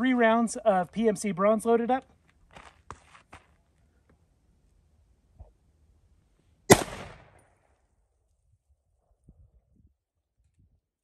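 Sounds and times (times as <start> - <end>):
feet scuffing on dirt: 2.2 - 3.8.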